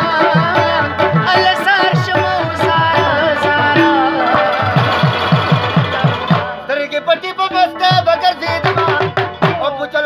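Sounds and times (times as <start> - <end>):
harmonium tones: 0.0 - 10.0
short plucked notes: 2.0 - 6.6.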